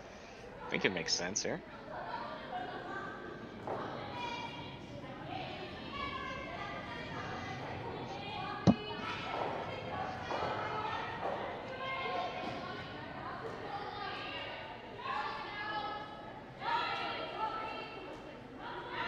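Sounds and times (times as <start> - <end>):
voices calling and talking: 0.0 - 19.0
sharp knock: 8.7 - 8.9.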